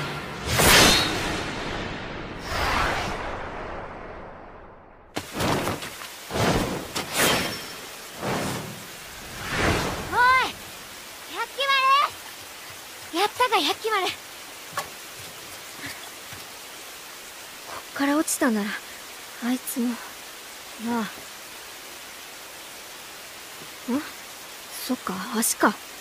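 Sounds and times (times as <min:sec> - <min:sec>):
steady rain: 0:00.0 - 0:26.0.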